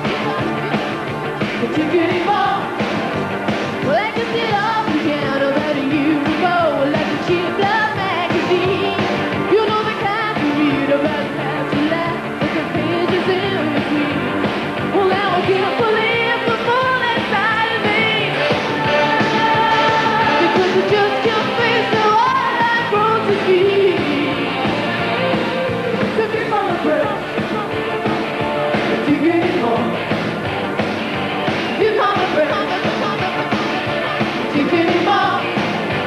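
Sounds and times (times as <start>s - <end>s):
woman singing lead vocal: 0.0s - 0.6s, 1.5s - 2.7s, 3.8s - 24.7s, 25.9s - 27.8s, 28.8s - 30.0s, 31.8s - 33.7s, 34.4s - 35.6s
drums: 0.0s - 36.0s
electric guitar: 0.0s - 36.0s
pop-rock band playing: 0.0s - 36.0s.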